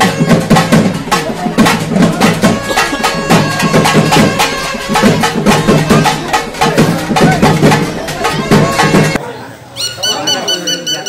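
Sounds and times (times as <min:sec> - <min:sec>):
drum music: 0:00.0 - 0:09.2
people's voices: 0:00.0 - 0:11.0.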